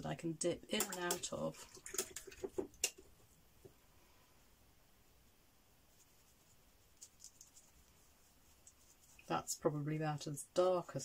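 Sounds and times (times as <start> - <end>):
paintbrush scratching on paper: 5.9 - 11.0.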